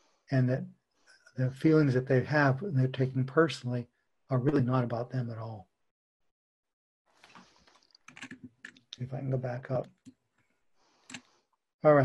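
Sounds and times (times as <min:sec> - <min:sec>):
sharp keyboard clicks: 0:08.0 - 0:08.9.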